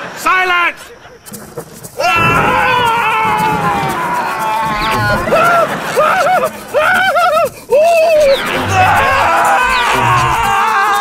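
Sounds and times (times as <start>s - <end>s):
background music: 1.3s - 11.0s
wordless vocal wailing: 2.0s - 11.0s.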